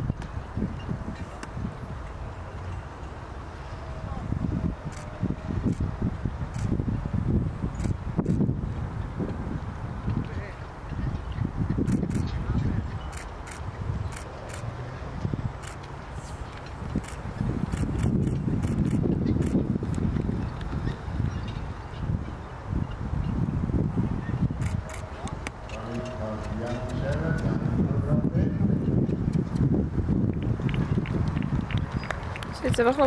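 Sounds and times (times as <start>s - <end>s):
wind buffeting microphone: 0.0s - 33.0s
hooves and harness: 7.6s - 23.1s, 24.2s - 27.8s.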